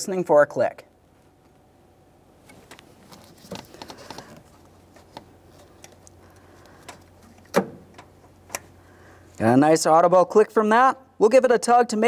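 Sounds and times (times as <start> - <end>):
plastic ticks and rustles: 2.5 - 7.4.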